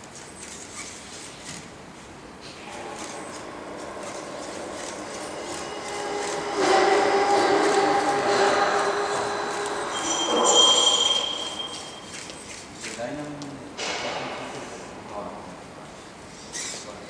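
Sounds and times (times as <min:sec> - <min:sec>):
high steady tone: 0:02.6 - 0:12.5.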